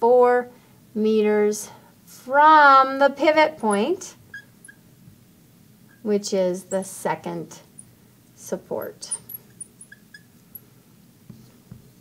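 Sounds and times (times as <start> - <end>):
marker squeaking on glass: 3.6 - 4.8, 5.9 - 6.1, 9.0 - 10.6.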